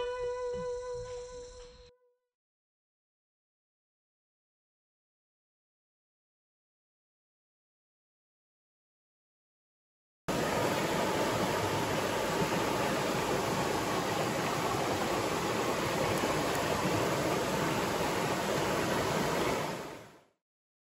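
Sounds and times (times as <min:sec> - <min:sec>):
river rapids rushing: 0:10.3 - 0:20.1.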